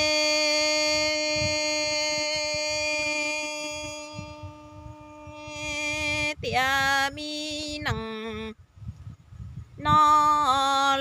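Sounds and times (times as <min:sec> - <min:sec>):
woman singing long note: 0:00.0 - 0:08.6.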